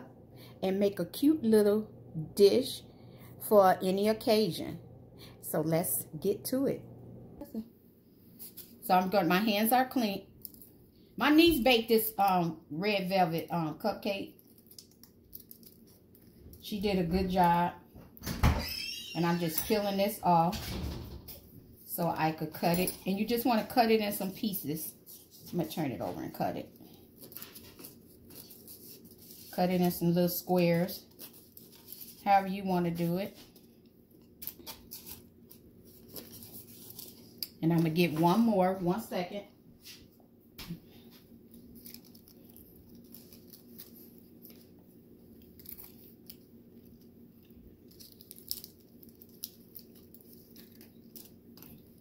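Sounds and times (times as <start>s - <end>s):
low room hum: 0.0s - 52.0s
foil cupcake liner crinkling: 11.4s - 17.7s, 22.2s - 39.1s, 40.8s - 52.0s.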